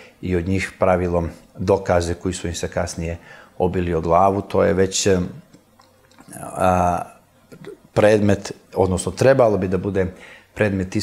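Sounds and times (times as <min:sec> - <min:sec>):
man's drawn-out hesitation sound: 0:06.3 - 0:09.0.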